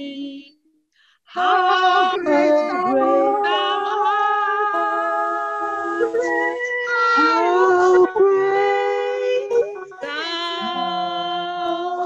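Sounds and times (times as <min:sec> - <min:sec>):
women singing a cappella: 0:00.0 - 0:00.5, 0:01.3 - 0:12.0.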